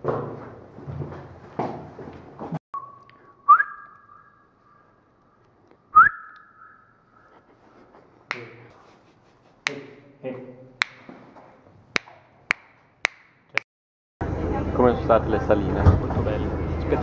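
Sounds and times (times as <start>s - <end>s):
echoing whistling: 2.8s - 7.4s.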